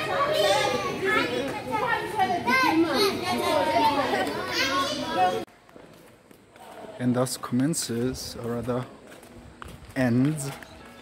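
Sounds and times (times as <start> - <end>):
children chattering and calling out: 0.0 - 5.5.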